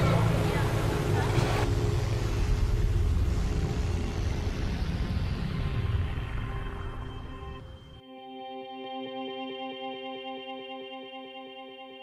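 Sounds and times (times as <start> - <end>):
street noise with voices: 0.0 - 1.8
dark ambient music drone: 0.0 - 12.0.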